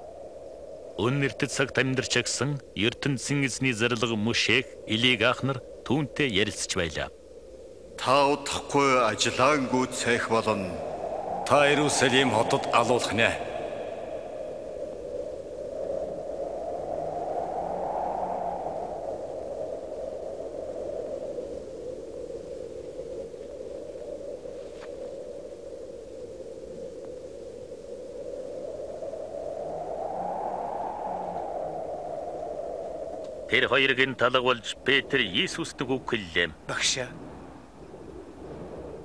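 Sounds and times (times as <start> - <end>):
wind-like rushing noise: 0.0 - 36.1.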